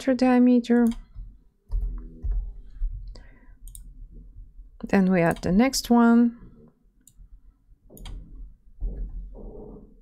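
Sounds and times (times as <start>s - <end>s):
computer mouse and keyboard clicks: 3.6s - 3.9s, 7.9s - 8.4s.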